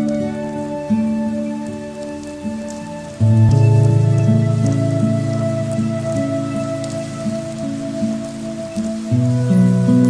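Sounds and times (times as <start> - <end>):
rain falling: 0.0 - 10.0
slow instrumental music: 0.0 - 10.0.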